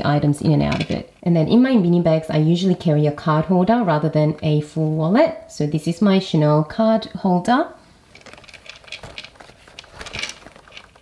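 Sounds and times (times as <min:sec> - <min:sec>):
leather scraping and rustling: 0:08.1 - 0:11.0
leather scuffle: 0:08.1 - 0:11.0.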